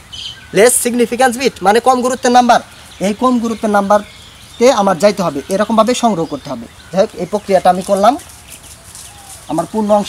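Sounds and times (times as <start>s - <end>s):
high bird chirps: 0.0s - 10.0s
man speaking: 0.5s - 8.3s, 9.4s - 10.0s.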